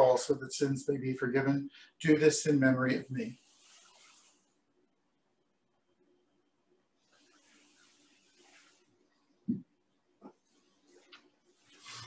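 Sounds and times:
soft hiss: 0:01.7 - 0:04.8, 0:07.0 - 0:12.0.

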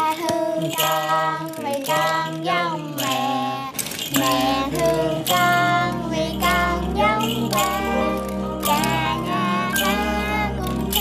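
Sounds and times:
background music: 0:00.0 - 0:11.0
girl singing: 0:00.0 - 0:11.0.

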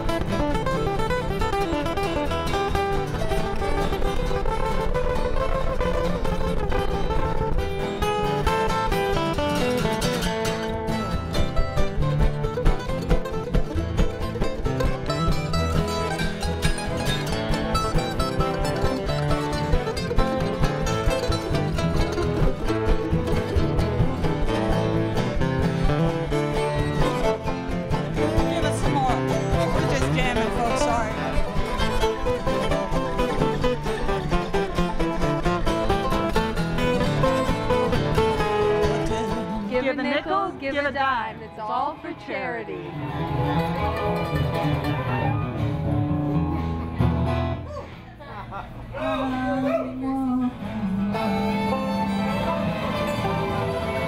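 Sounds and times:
bluegrass band playing: 0:00.0 - 0:54.0
mandolin: 0:00.0 - 0:54.0
strummed acoustic guitars: 0:00.0 - 0:54.0
upright bass: 0:00.0 - 0:54.0.

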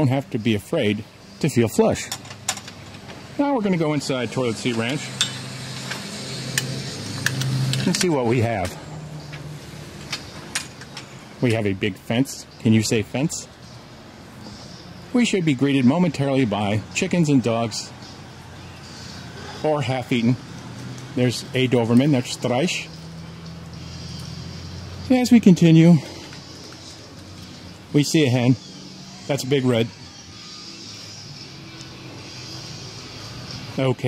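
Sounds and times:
outdoor background noise: 0:00.0 - 0:34.0.

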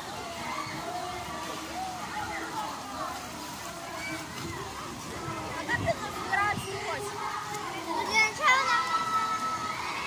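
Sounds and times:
children shouting: 0:00.0 - 0:05.6, 0:06.8 - 0:10.0
hubbub of voices: 0:00.0 - 0:10.0.

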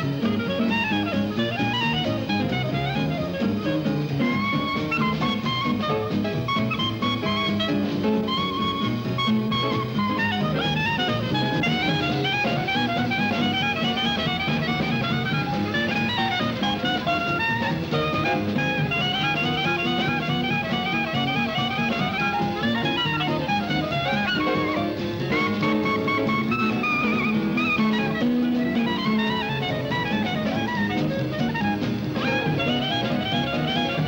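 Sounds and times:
clarinet solo: 0:00.0 - 0:34.0
jazz band with bass and drums: 0:00.0 - 0:34.0.

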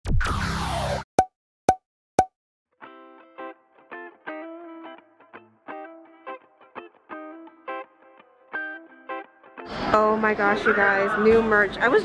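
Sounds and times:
music with plucked notes: 0:02.8 - 0:09.5.

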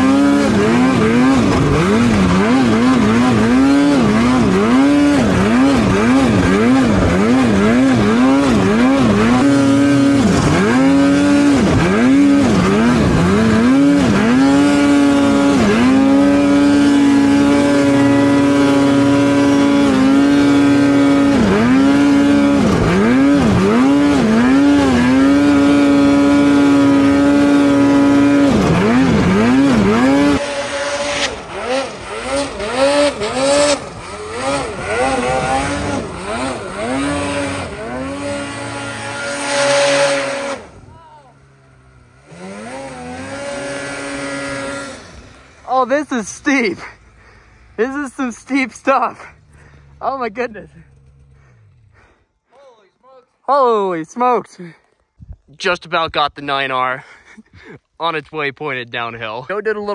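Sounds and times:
snowmobile engine revving: 0:00.0 - 0:52.6
distant snowmobile revving: 0:00.0 - 0:52.7.

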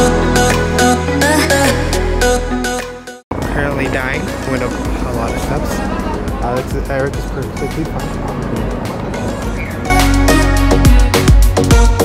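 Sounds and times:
background music: 0:00.0 - 0:12.0
voices talking: 0:03.4 - 0:09.9.

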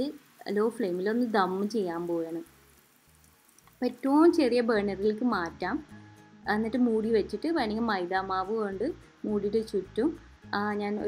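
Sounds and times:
woman speaking: 0:00.0 - 0:02.5, 0:03.8 - 0:05.8, 0:06.5 - 0:11.0.

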